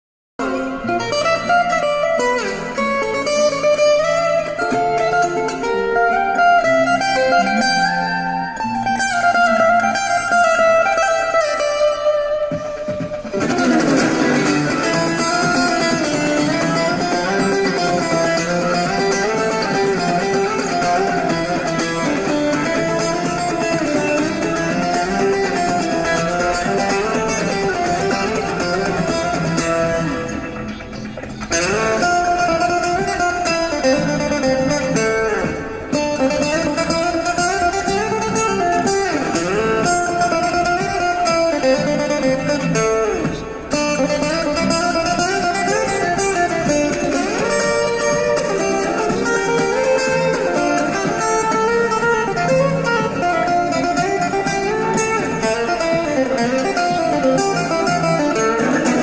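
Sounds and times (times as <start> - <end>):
acoustic guitar playing: 0.4 - 59.0.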